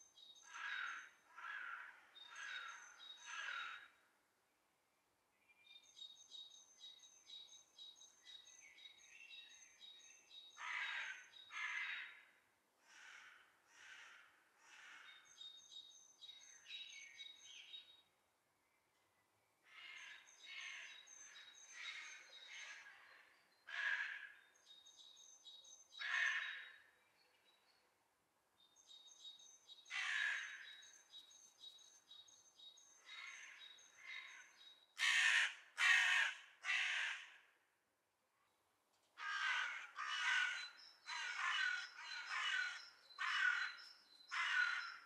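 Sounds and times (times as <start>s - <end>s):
crows cawing: 0.5s - 4.0s, 10.6s - 15.3s, 19.7s - 21.1s, 23.7s - 24.4s, 26.0s - 26.8s, 29.9s - 30.8s, 33.1s - 37.6s, 39.2s - 45.0s.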